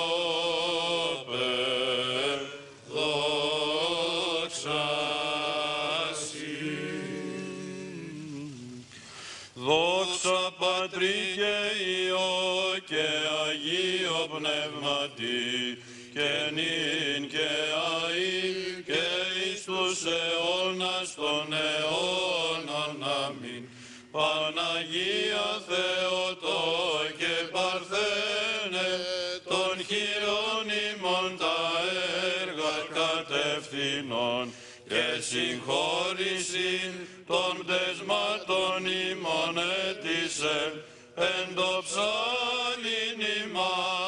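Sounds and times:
clergy chanting a hymn: 0.0s - 9.0s, 9.6s - 44.0s.

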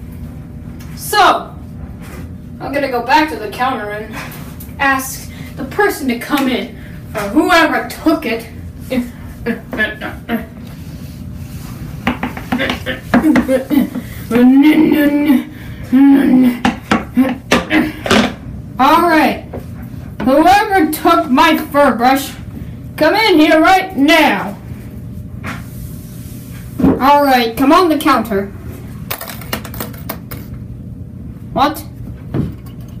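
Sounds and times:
person making pitched vocal sounds: 14.3s - 16.6s.

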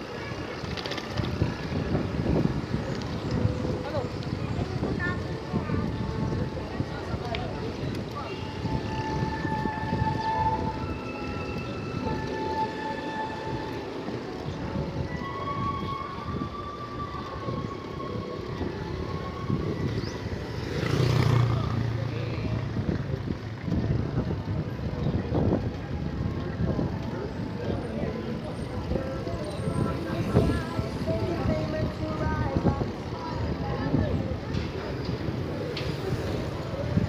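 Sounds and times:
bicycle road noise: 0.0s - 37.0s
wind buffeting microphone: 0.0s - 37.0s.

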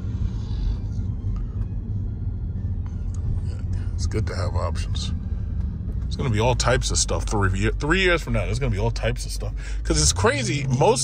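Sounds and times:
road and tyre rumble in car: 0.0s - 11.0s.

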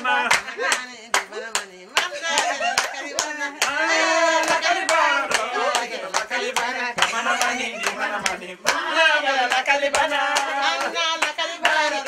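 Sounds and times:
rhythmic hand clapping: 0.0s - 12.0s
voices singing and calling: 0.0s - 12.0s.

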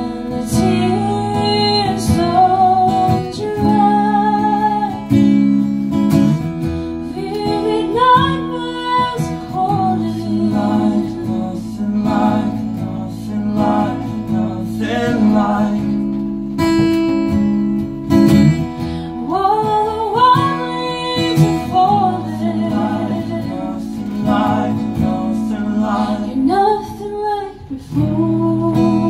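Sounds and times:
lead and harmony vocals: 0.0s - 6.0s, 6.6s - 17.1s, 18.6s - 29.0s
strummed acoustic guitars: 0.0s - 29.0s.

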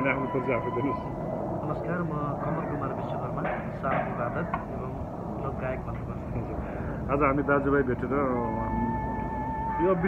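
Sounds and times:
low background rumble: 0.0s - 10.0s
quiet indistinct talking: 0.0s - 10.0s.

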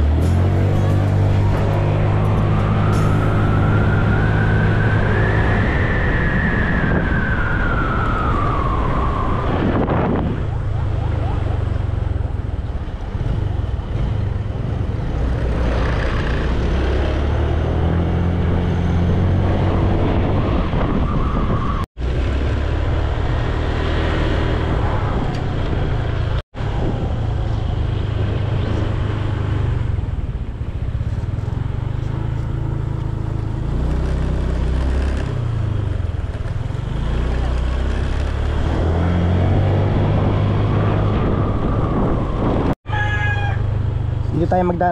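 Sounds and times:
falling tone: 0.1s - 10.5s
wind on microphone: 0.6s - 11.8s, 12.6s - 21.9s, 22.6s - 31.6s, 34.3s - 43.2s.

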